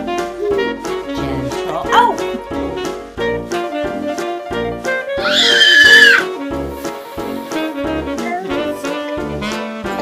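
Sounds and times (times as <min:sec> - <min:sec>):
jazz music with saxophone: 0:00.0 - 0:10.0
toddler squealing: 0:05.2 - 0:06.3.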